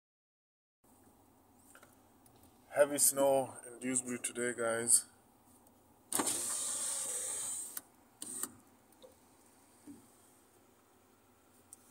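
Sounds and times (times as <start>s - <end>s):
car electric window motor: 6.1s - 8.6s.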